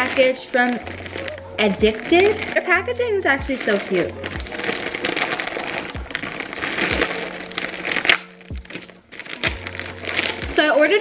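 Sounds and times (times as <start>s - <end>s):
plastic bag crinkling: 0.0s - 11.0s
plastic bag sharp crack: 0.0s - 11.0s.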